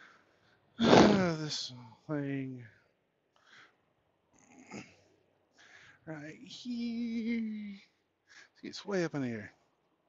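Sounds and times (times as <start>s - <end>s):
faint short breaths: 0.0s - 0.8s, 3.4s - 3.9s, 4.6s - 6.0s.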